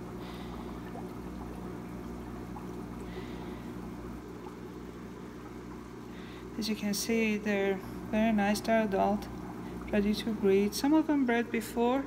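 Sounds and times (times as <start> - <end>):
steady low hum: 0.0 - 12.0
water trickling: 0.0 - 12.0.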